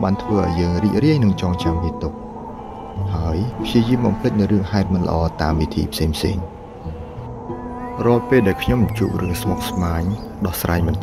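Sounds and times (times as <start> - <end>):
faint steady background tones: 0.0 - 11.0
person speaking: 8.0 - 11.0.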